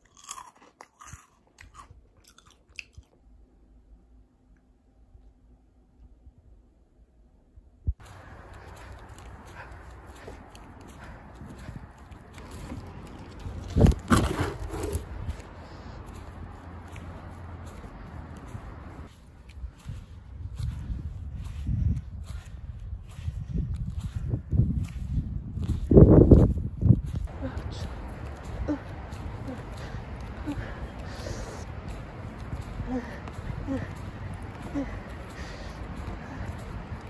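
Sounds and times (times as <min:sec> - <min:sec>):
footsteps crunching in snow: 0:08.0 - 0:37.0.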